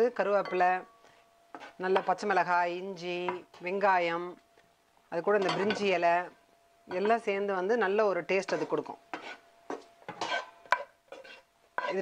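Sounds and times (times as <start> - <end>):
wooden spatula scraping a pan: 1.0 - 2.4, 8.3 - 12.0.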